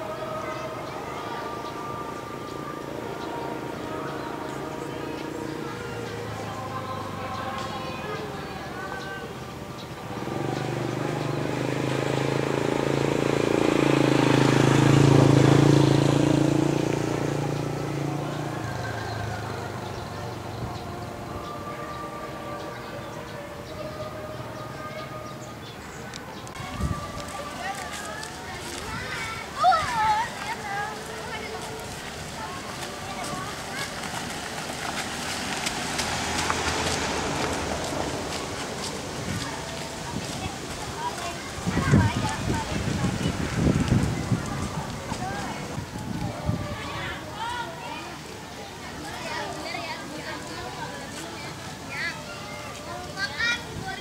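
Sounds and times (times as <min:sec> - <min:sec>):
shuffling footsteps: 0:00.0 - 0:54.0
vehicle engine passing: 0:00.0 - 0:54.0.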